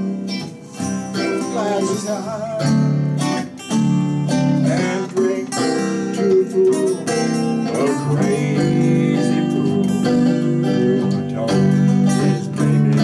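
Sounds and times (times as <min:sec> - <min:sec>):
picked guitar lines: 0:00.0 - 0:13.0
strummed acoustic guitar chords: 0:00.0 - 0:13.0.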